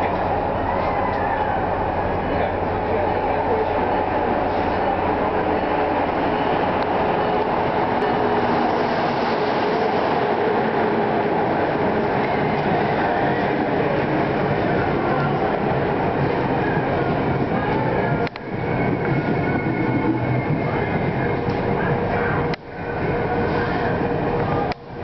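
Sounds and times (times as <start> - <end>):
train wheels rumbling on rails: 0.0 - 25.0.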